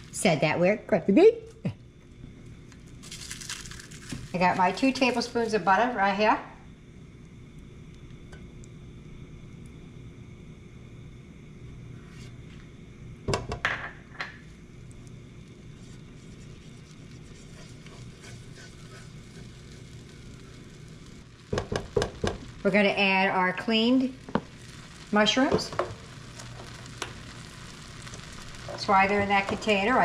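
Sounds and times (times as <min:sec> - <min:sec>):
low steady hum: 0:00.0 - 0:30.0
spatula scraping frying pan: 0:15.8 - 0:19.8.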